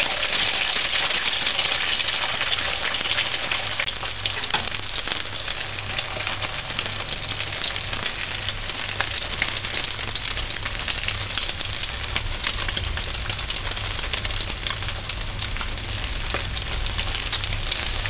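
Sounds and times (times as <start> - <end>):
egg sizzling in hot oil: 0.0 - 18.0
oil crackling and popping: 0.0 - 18.0.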